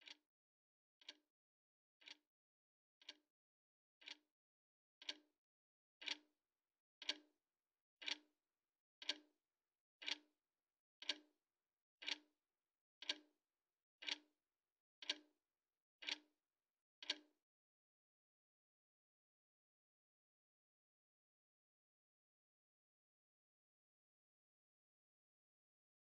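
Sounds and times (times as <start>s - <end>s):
clock ticking: 0.0s - 0.2s, 4.0s - 4.2s, 5.0s - 5.2s, 6.0s - 6.3s, 7.0s - 7.3s, 8.0s - 8.3s, 9.0s - 9.3s, 10.0s - 10.3s, 11.0s - 11.3s, 12.0s - 12.3s, 13.0s - 13.3s, 14.0s - 14.3s, 15.0s - 15.3s, 16.0s - 16.3s, 17.0s - 17.4s.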